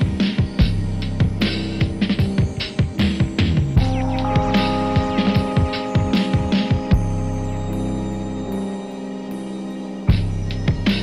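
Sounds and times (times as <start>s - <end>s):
hip-hop beat: 0.0s - 11.0s.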